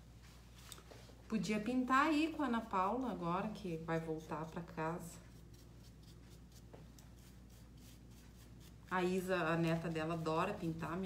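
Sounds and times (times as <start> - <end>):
paintbrush scratching on frame: 2.0 - 11.0.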